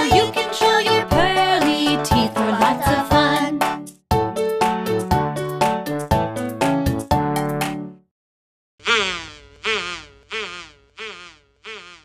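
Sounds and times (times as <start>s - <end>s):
cartoon insect buzzing: 8.8s - 12.0s.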